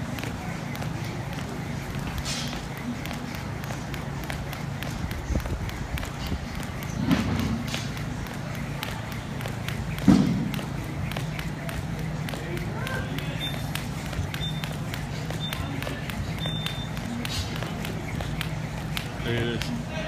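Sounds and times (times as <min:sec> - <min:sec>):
jump rope slapping rubber floor: 0:00.0 - 0:20.0
steady low hum: 0:00.0 - 0:20.0.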